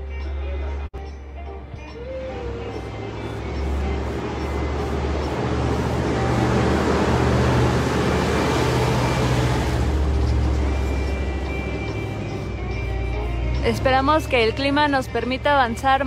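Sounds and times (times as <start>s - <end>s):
road vehicle passing: 2.0s - 16.0s.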